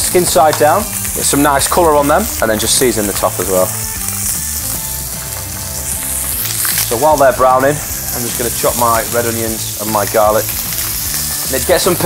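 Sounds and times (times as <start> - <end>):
background music: 0.0 - 12.0
chicken sizzling in a pan: 0.0 - 12.0.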